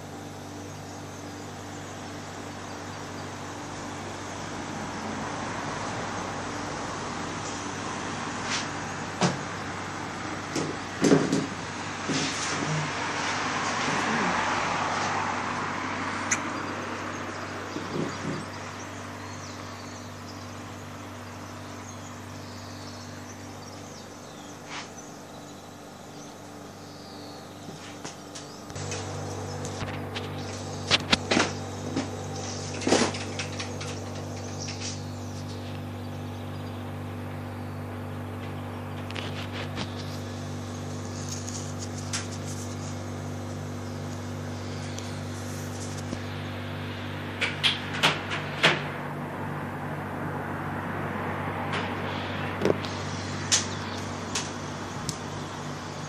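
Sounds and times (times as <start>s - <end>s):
steady low hum: 0.0s - 56.0s
car passing: 12.4s - 18.8s, 48.8s - 54.9s.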